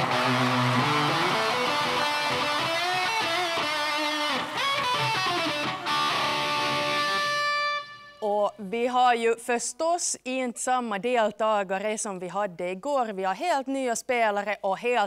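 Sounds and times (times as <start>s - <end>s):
electric guitar solo: 0.0s - 8.3s.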